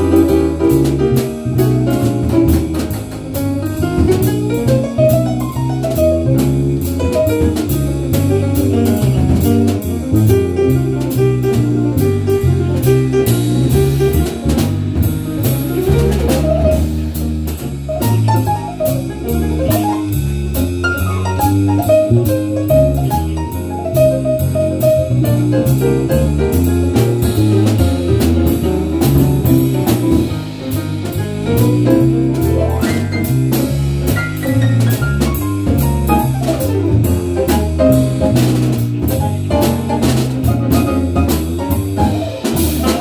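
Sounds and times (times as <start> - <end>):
acoustic piano: 0.0 - 43.0
drum kit cymbal beat: 0.0 - 43.0
electric bass guitar: 0.0 - 43.0.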